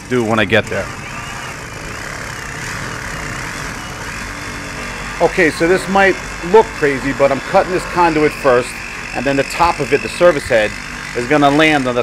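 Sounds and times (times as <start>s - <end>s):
reciprocating saw cutting conduit: 0.6s - 12.0s.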